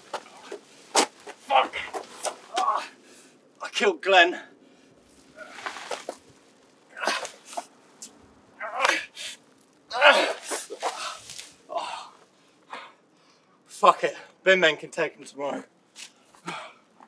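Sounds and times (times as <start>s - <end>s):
man grunting with effort: 9.9s - 10.6s.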